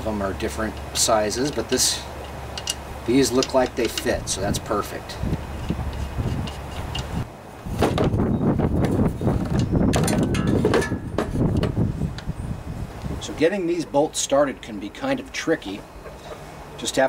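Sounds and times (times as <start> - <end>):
metal clunks and scraping: 5.3 - 11.8, 16.0 - 16.5.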